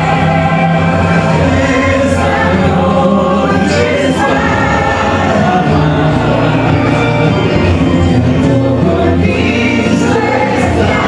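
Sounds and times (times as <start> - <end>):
man and woman singing duet: 0.0 - 11.0
musical accompaniment: 0.0 - 11.0.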